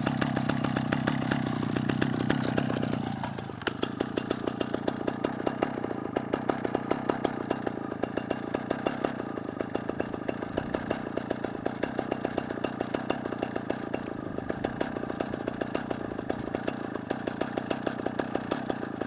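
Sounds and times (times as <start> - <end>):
chainsaw engine idling: 0.0 - 19.0.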